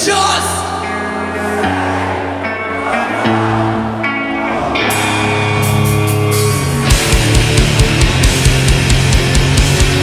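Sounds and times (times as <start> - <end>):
drums and bass: 4.9 - 10.0.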